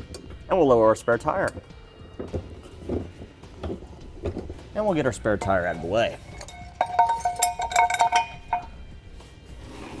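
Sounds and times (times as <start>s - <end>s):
metal clinking and ringing: 5.3s - 9.0s.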